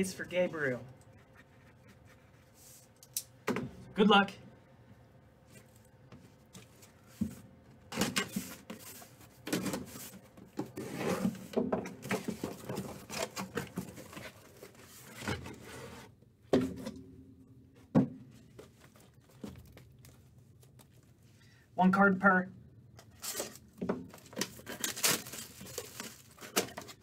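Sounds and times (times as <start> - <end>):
cardboard scraping and rustling: 8.0 - 16.2.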